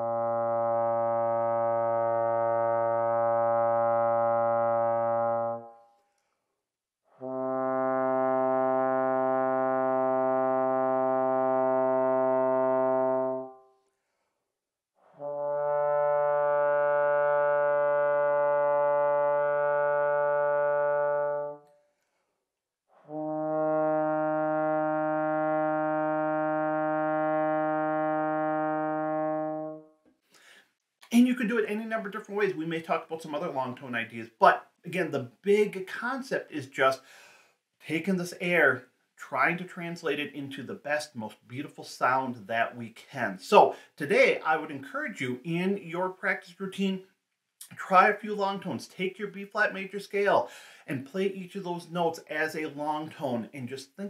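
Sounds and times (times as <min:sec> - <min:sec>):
trombone playing long tones: 0:00.0 - 0:05.8, 0:07.2 - 0:13.7, 0:15.0 - 0:21.7, 0:23.0 - 0:29.9
breath between notes: 0:30.2 - 0:30.8, 0:37.0 - 0:37.6, 0:43.7 - 0:44.0, 0:50.5 - 0:50.9.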